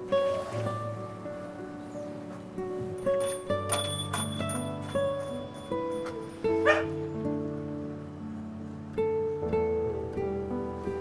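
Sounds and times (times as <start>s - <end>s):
gentle guitar music: 0.0s - 11.0s
small dog yipping: 6.6s - 6.9s.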